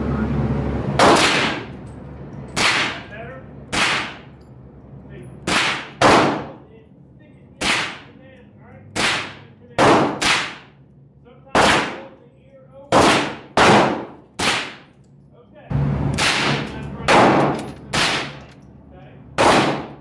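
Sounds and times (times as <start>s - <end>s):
gunshots with echo: 1.0s - 1.7s, 2.6s - 3.1s, 3.7s - 4.3s, 5.4s - 6.6s, 7.6s - 8.1s, 8.9s - 10.7s, 11.5s - 12.2s, 12.9s - 14.9s, 16.1s - 18.4s, 19.4s - 20.0s.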